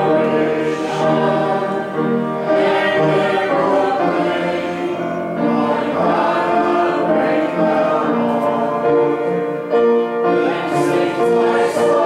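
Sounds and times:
congregation singing a hymn: 0.0 - 12.0
keyboard accompaniment: 0.0 - 12.0.

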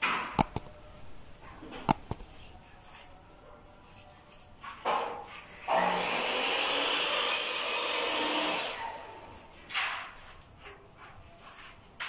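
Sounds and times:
wire scraping through conduit: 7.2 - 12.0.

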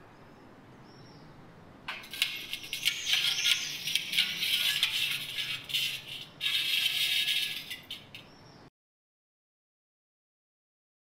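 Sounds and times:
mirror glass pieces clinking: 1.9 - 8.2.

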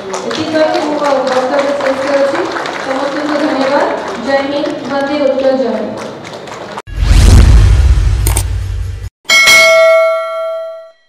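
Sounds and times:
deep whooshing rumble: 6.9 - 9.1
bright bell ding: 9.3 - 11.0.

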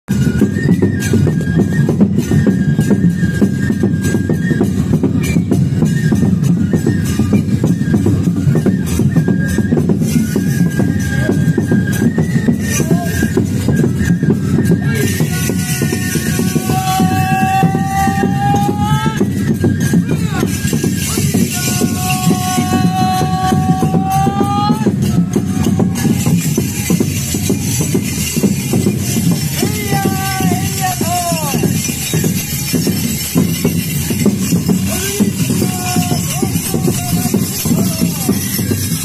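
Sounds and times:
drums beating steadily: 0.1 - 39.0.

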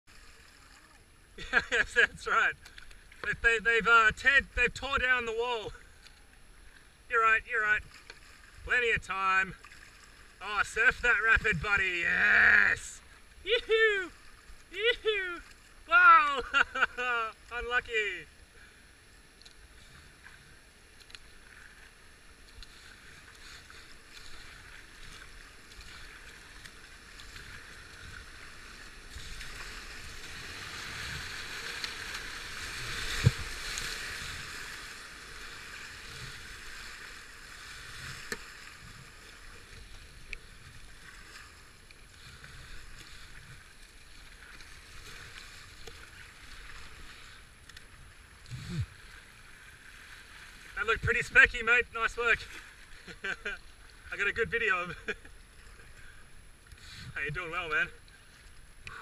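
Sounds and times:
paddle splashes: 0.1 - 59.0
rushing whitewater: 10.4 - 18.7, 22.7 - 40.0.

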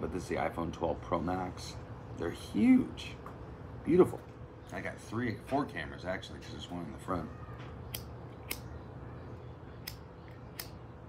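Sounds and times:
low background hum: 0.0 - 11.0
lighter spark wheel clicks: 9.8 - 10.8.

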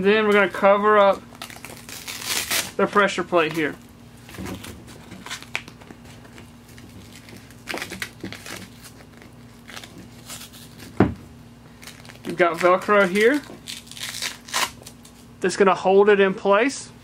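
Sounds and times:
fabric bandage rustling: 0.0 - 15.3.

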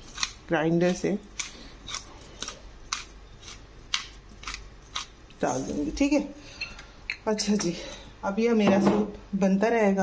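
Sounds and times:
pepper mill grinding: 0.0 - 5.9.

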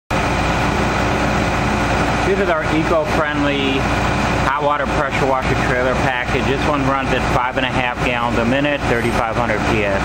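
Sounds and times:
pressure washer engine drone: 0.1 - 10.0.

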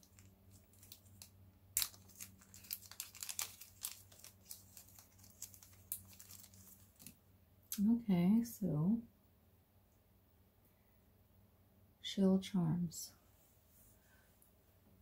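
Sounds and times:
plastic bag crinkling: 0.0 - 7.2.

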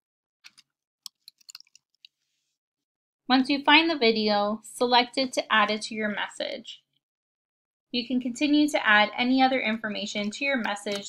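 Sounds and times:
computer keyboard keystrokes: 0.5 - 1.8.

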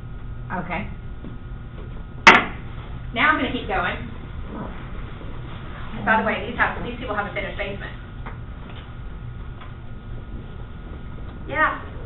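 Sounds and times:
low hum of room noise: 0.0 - 12.0.

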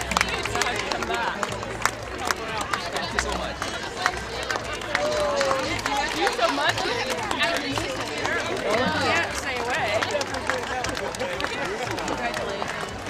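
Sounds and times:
crowd chatter: 0.0 - 13.0
people clapping: 0.0 - 13.0.

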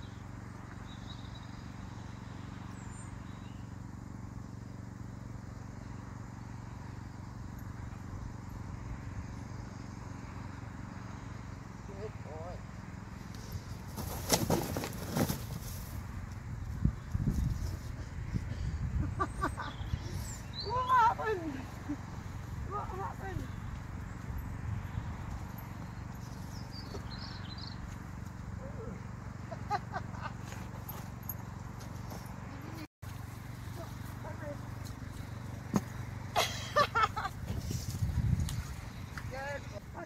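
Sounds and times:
low outdoor rumble: 0.0 - 40.0.

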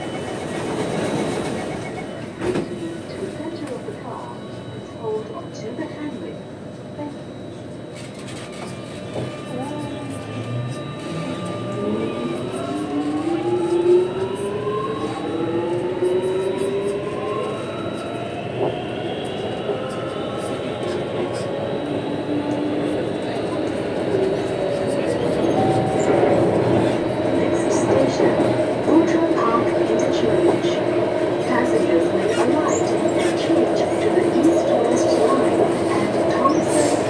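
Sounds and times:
train wheel and running noise: 0.0 - 37.0.

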